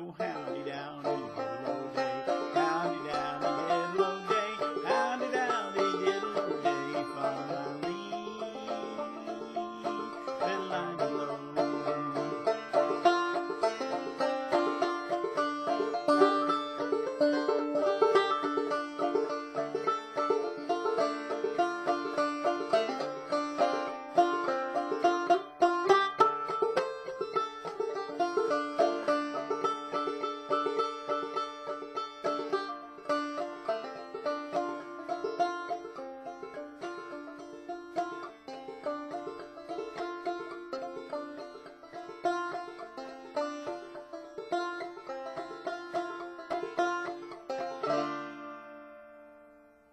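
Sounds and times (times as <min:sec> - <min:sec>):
banjo playing: 0:00.0 - 0:49.9.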